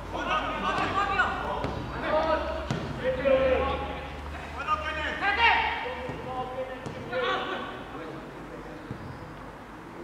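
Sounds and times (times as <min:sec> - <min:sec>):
football being kicked: 0:02.6 - 0:03.0, 0:06.0 - 0:07.1.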